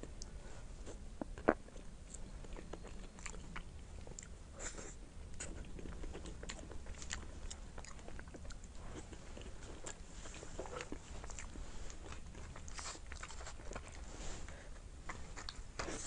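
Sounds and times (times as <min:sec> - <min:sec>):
close chewing of soft bun: 0:00.0 - 0:16.0.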